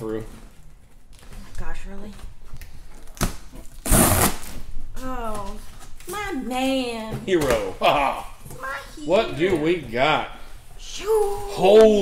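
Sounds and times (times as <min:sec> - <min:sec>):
packing tape ripping: 0:03.0 - 0:04.6.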